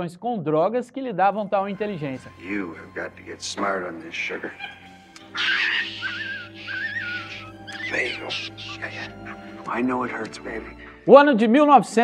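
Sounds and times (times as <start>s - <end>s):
held music chord: 1.3s - 11.1s
monkey screeching: 4.3s - 9.7s.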